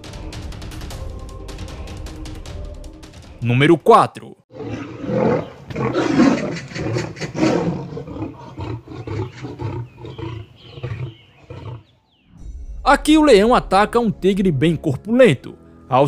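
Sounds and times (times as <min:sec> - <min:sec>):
big cats snarling and roaring: 0:04.5 - 0:12.0.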